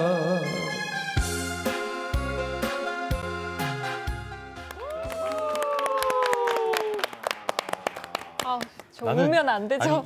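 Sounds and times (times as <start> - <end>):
people clapping: 4.6 - 9.5.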